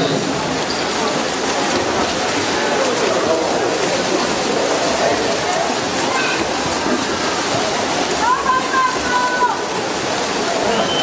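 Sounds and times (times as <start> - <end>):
crowd noise: 0.0 - 11.0
water splashing: 0.0 - 11.0.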